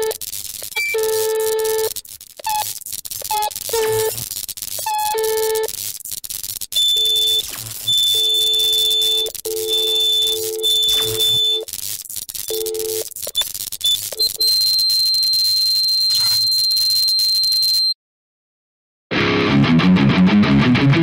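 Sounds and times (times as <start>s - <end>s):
high thin electronic tone: 0.0s - 18.0s
low electronic tone: 6.9s - 11.7s, 15.8s - 16.8s.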